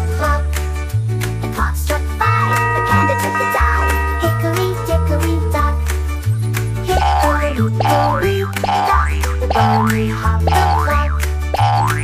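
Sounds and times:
children's song backing music: 0.0s - 12.0s
cartoon boing sound effects: 6.9s - 12.0s.

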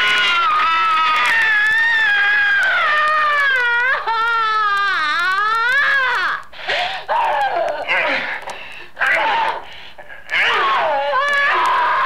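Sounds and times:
person wailing: 7.1s - 8.4s, 10.3s - 12.0s.

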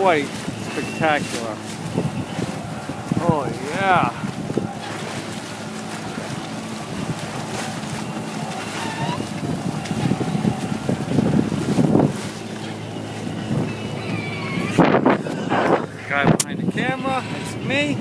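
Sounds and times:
water rushing along boat hull: 0.0s - 18.0s
wind buffeting microphone: 0.0s - 18.0s.

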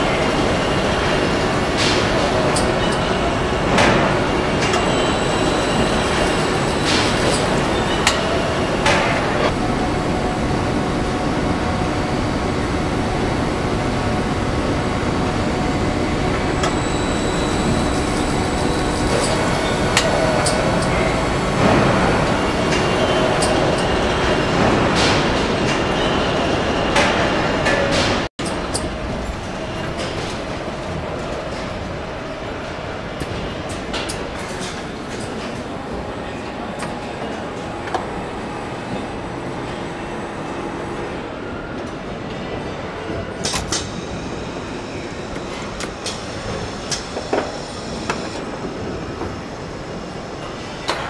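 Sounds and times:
conveyor machinery hum and rumble: 0.0s - 51.0s
machinery clanks and clicks: 0.0s - 51.0s.

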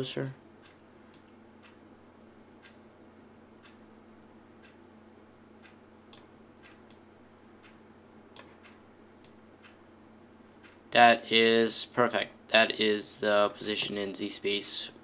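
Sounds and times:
low steady hum: 0.0s - 15.0s.

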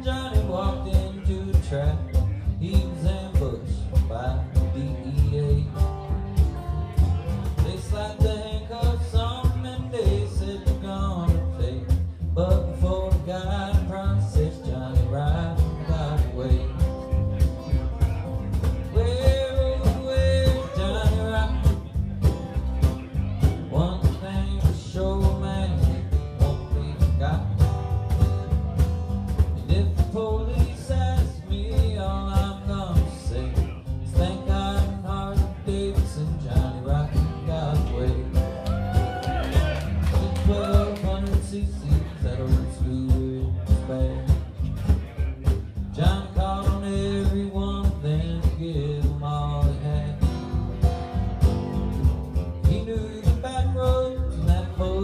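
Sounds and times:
country band playing: 0.0s - 55.0s
guitar: 0.0s - 55.0s
man singing: 0.0s - 55.0s
upright bass: 0.0s - 55.0s.

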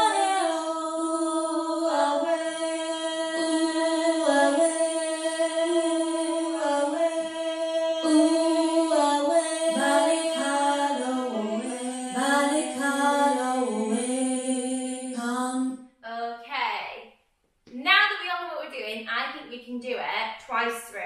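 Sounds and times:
woman singing vocal warm-up: 0.0s - 15.9s.

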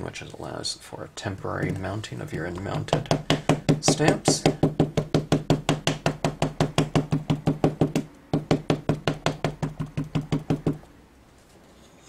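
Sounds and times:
ink pad tapping rubber stamp: 2.8s - 10.8s.

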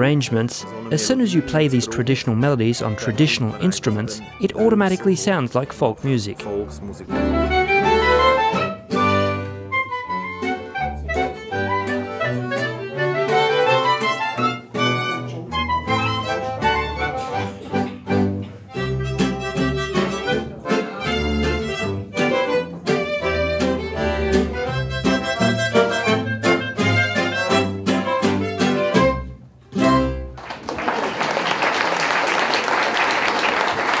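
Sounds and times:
button accordion: 0.0s - 30.2s
acoustic guitar: 0.0s - 30.4s
violin: 0.0s - 30.4s
folk ensemble playing: 0.0s - 30.8s
clarinet: 6.8s - 30.4s.

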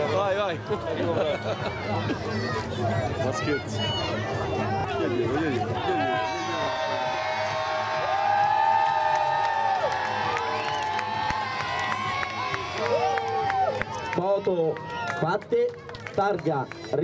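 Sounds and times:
children cheering and shouting: 1.0s - 15.2s.

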